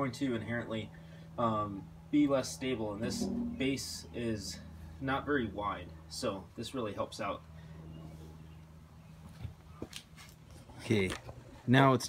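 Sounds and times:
steady low hum: 0.0 - 11.7.

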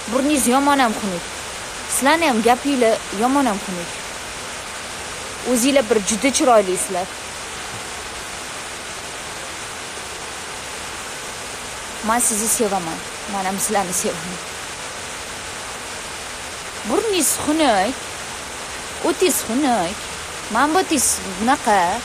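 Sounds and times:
woman speaking: 0.0 - 1.2, 1.9 - 3.9, 5.4 - 7.1, 12.0 - 14.4, 16.8 - 18.0, 19.0 - 22.0
background hiss: 0.0 - 22.0.

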